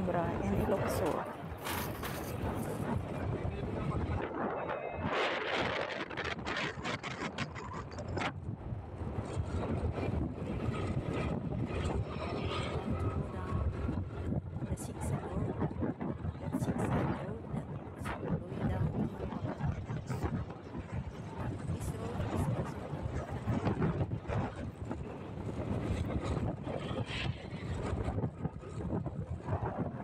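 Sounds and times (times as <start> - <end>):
road and engine noise: 0.0 - 28.6
wind buffeting microphone: 0.0 - 30.0.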